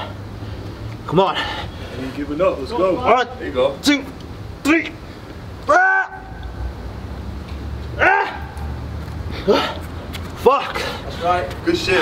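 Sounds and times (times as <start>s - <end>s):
man grunting with effort: 9.4s - 9.8s.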